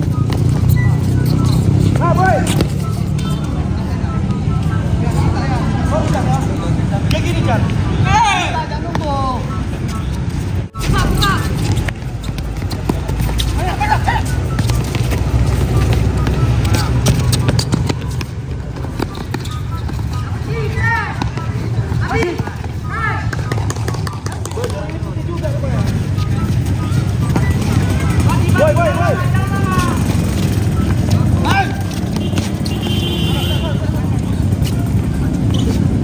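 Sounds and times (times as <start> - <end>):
players shouting: 7.2 - 9.4, 12.7 - 34.0
shoes scuffing on concrete: 10.8 - 23.7, 29.7 - 33.7.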